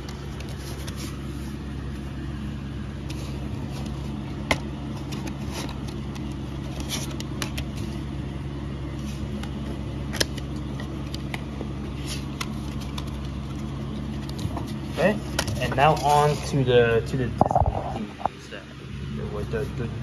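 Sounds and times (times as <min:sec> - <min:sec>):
paper packaging clicks and rustles: 0:00.0 - 0:01.6, 0:03.0 - 0:08.0, 0:09.0 - 0:16.4
steady low hum: 0:00.0 - 0:20.0.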